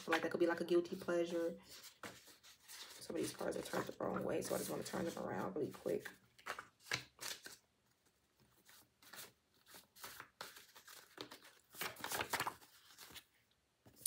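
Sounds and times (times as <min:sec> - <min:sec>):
cards shuffled by hand: 0:01.6 - 0:14.0.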